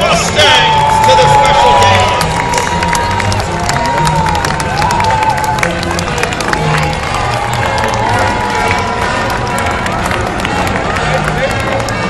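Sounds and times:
crowd talking and calling out: 0.0s - 12.0s
scattered clapping: 0.0s - 12.0s.

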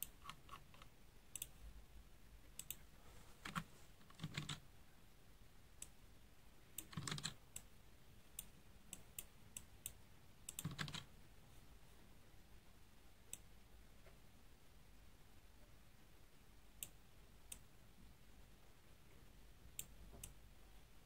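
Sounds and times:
mouse clicks: 0.0s - 1.6s, 2.6s - 2.8s
keyboard keystrokes: 3.4s - 4.6s, 6.8s - 7.4s, 10.5s - 11.1s.

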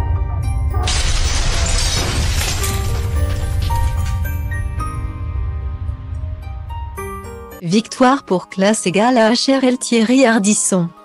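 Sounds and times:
shattering sound effect: 0.8s - 4.6s.

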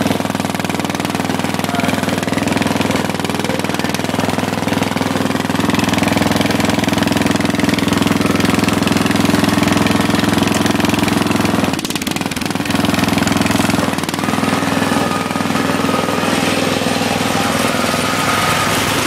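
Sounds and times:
lawn tractor engine chugging: 0.0s - 19.0s.

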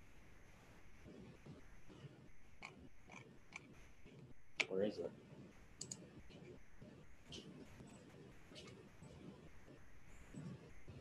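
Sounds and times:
computer mouse clicks: 2.6s - 3.7s, 5.8s - 6.5s.

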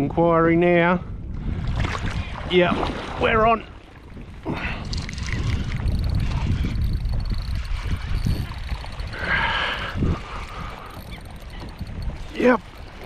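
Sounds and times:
wind buffeting microphone: 0.0s - 13.0s
water sloshing against kayak: 1.4s - 13.0s.

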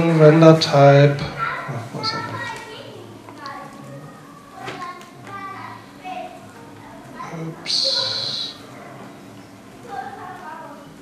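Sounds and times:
man speaking into microphone: 0.0s - 2.4s
indistinct talk: 0.0s - 11.0s.

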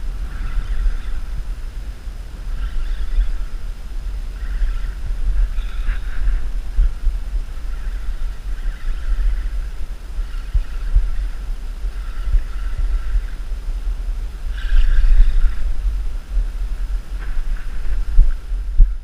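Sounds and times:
faint hiss: 0.0s - 19.0s
wind buffeting microphone: 0.0s - 19.0s.

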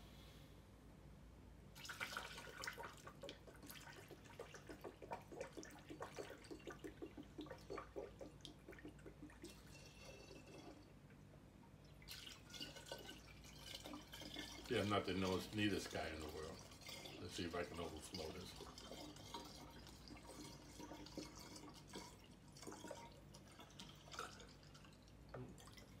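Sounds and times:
liquid trickling and splashing: 1.8s - 11.0s, 11.7s - 26.0s.

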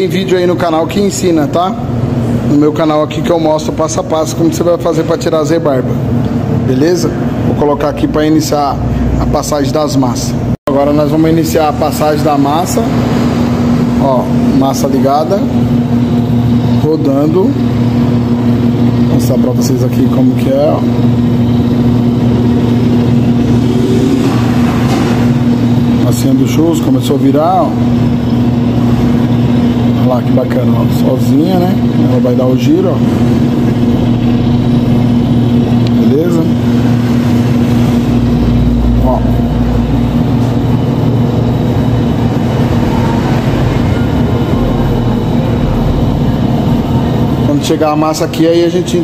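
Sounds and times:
machine motor hum: 0.0s - 49.0s.

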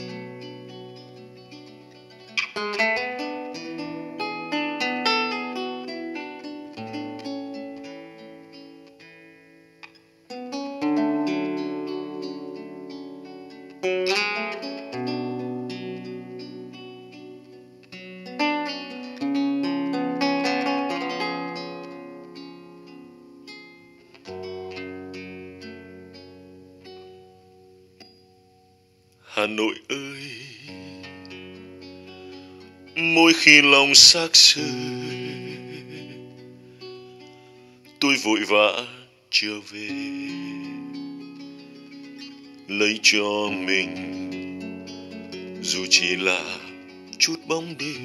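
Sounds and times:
plucked guitar music: 0.0s - 48.0s.

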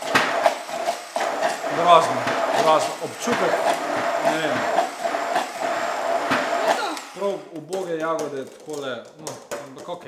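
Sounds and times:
immersion blender running: 0.0s - 7.5s.

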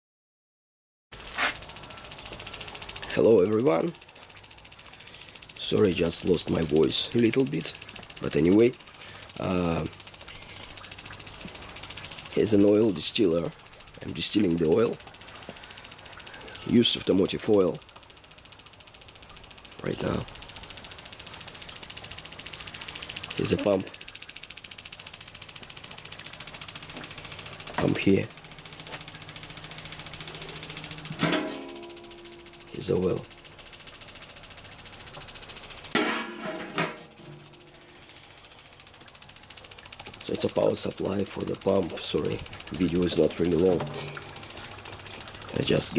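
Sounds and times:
electric pump buzzing: 1.1s - 45.9s
faint background hum and hiss: 1.2s - 45.9s.

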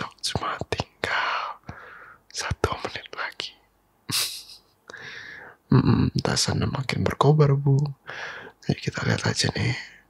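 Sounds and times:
man whispering: 0.0s - 1.7s, 2.3s - 3.7s, 5.7s - 10.0s.

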